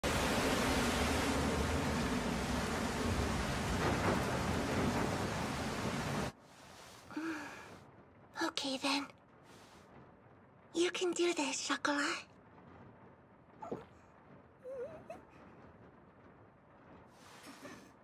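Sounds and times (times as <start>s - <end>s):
heavy rain: 0.0s - 18.0s.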